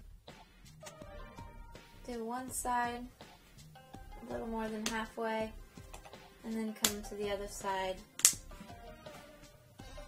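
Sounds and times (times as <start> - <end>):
faint background music: 0.0 - 10.0
plastic bezel clip snapping: 8.2 - 8.4.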